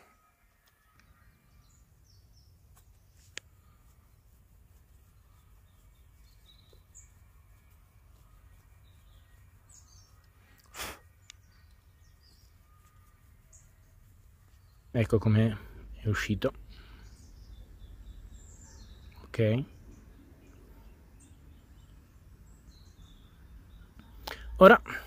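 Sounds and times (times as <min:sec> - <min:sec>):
faint bird chirps: 0:00.0 - 0:25.0.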